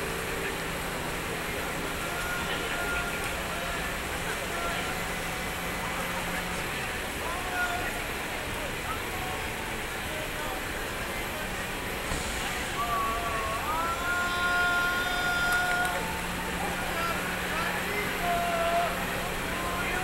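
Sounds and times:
city hum: 0.0s - 20.0s
crowd murmur: 0.0s - 20.0s.

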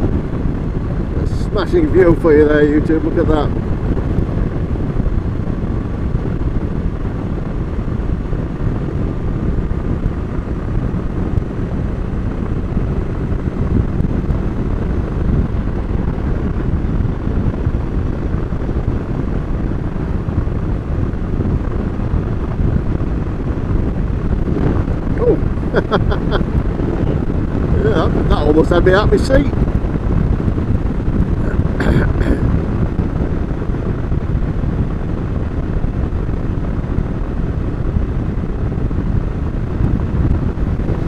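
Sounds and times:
motorcycle engine running: 0.0s - 41.0s
wind on microphone: 0.0s - 41.0s.

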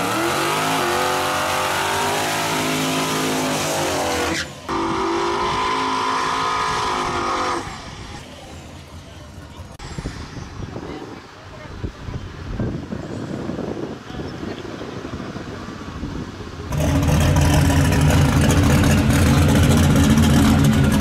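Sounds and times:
truck engine revving high: 0.0s - 8.2s, 16.7s - 21.0s
tires spinning: 0.0s - 10.0s, 16.6s - 21.0s.

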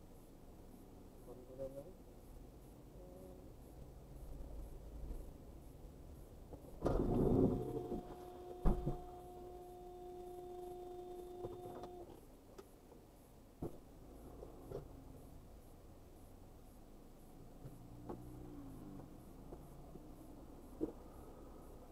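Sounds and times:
loud bump: 6.8s - 9.2s
car horn steady note: 7.0s - 12.0s.

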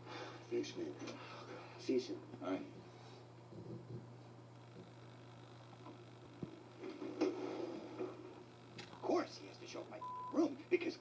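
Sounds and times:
muffled tv audio: 0.0s - 11.0s
steady low hum: 0.0s - 11.0s.

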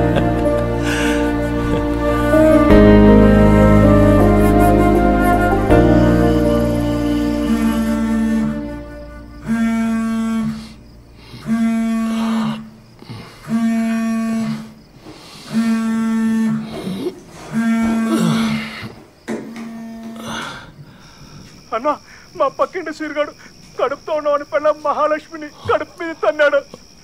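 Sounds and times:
man talking: 21.7s - 26.7s.

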